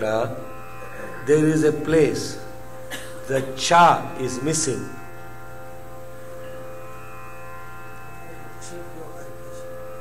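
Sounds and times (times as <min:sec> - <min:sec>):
steady musical drone: 0:00.0 - 0:10.0.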